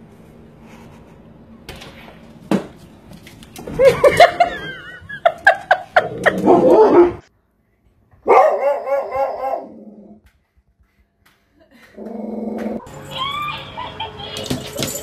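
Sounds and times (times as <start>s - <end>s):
dogs barking: 8.2s - 9.8s.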